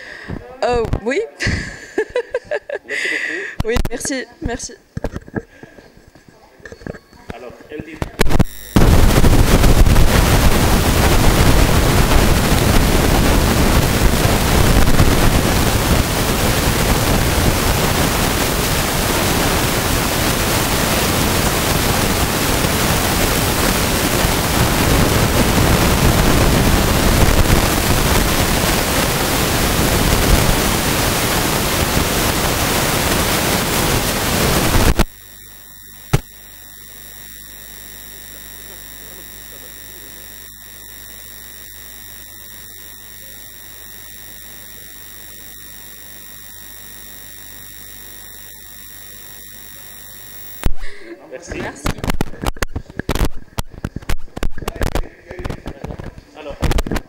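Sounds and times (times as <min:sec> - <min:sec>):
loud static hiss: 0:00.0 - 0:05.6, 0:07.7 - 0:57.0.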